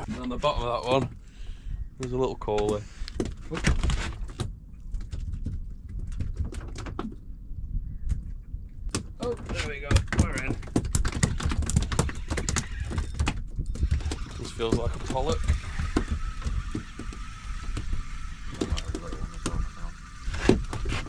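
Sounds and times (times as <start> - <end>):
water around a boat: 0.0 - 21.0
wind: 0.0 - 21.0.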